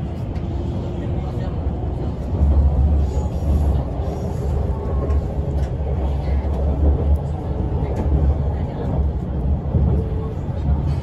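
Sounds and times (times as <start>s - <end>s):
train running gear rumble: 0.0s - 11.0s.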